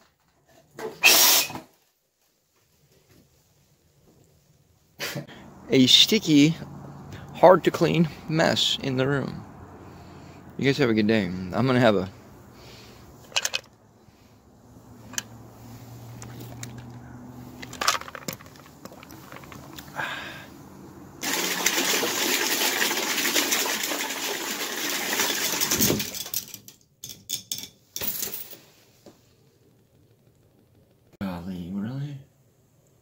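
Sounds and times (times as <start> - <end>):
handling clicks and knocks: 13.2 - 13.7, 15.0 - 15.4, 16.2 - 20.0
water rushing in a bathtub: 21.2 - 26.1.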